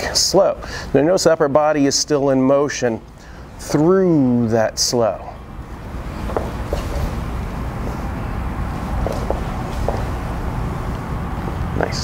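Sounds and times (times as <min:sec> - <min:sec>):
low room rumble: 0:00.0 - 0:12.0
dance shoes squeaking on wooden floor: 0:06.1 - 0:10.5.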